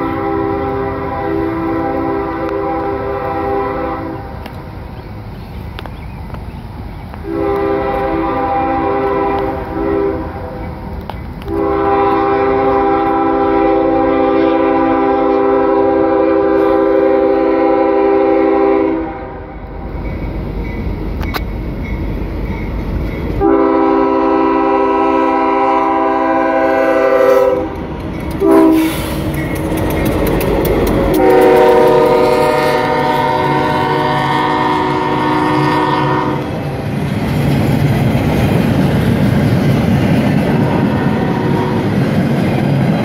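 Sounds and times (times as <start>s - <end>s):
locomotive air horn blasts: 0.0s - 4.4s, 7.2s - 10.6s, 11.4s - 19.6s, 23.4s - 27.8s, 28.4s - 29.2s, 31.1s - 36.6s, 40.6s - 42.0s
locomotive engine rumble: 0.0s - 43.0s.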